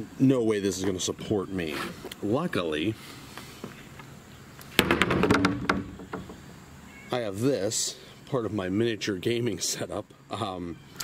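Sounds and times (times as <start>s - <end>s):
wooden boards knocking and clattering: 4.7s - 6.5s.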